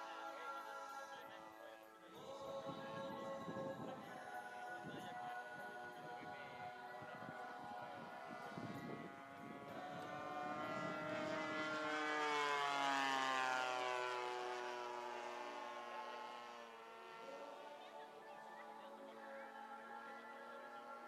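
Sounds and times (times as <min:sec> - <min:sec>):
model airplane engine flying past: 0:01.2 - 0:21.0.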